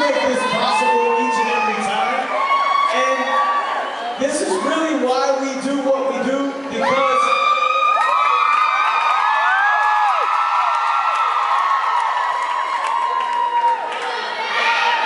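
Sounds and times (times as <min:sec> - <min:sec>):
crowd cheering and screaming: 0:00.0 - 0:15.0.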